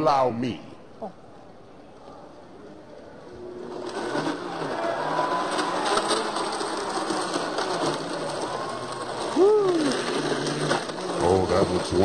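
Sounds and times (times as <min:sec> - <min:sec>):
blender grinding: 0:03.4 - 0:12.0.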